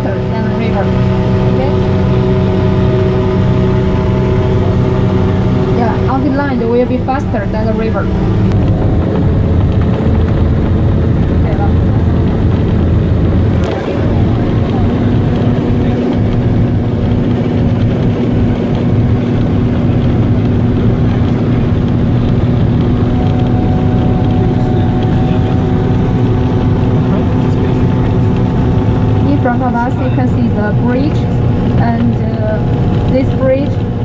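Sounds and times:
hovercraft engine drone: 0.0 - 34.0.

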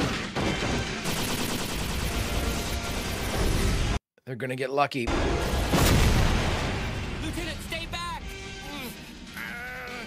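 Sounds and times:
rapid weapon fire: 0.0 - 3.7
background music: 5.1 - 10.0.

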